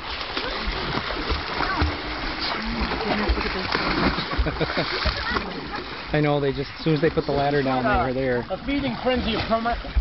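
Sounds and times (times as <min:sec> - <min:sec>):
water splashing: 0:00.0 - 0:10.0.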